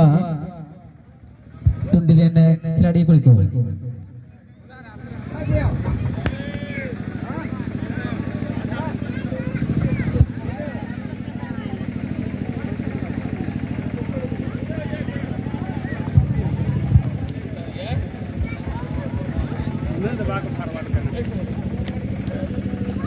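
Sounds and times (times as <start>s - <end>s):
engine puttering: 4.0s - 23.0s
people shouting and calling: 5.0s - 23.0s.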